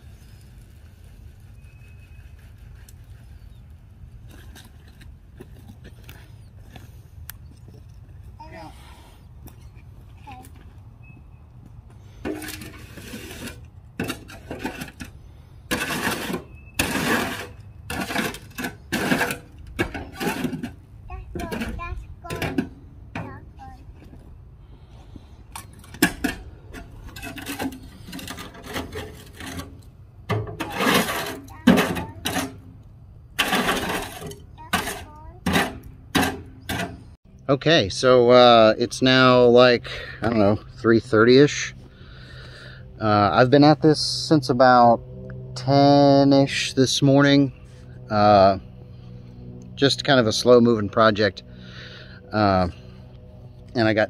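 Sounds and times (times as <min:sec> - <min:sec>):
shovel scraping in wheelbarrow: 0:12.1 - 0:20.8, 0:25.6 - 0:32.8, 0:33.4 - 0:37.2.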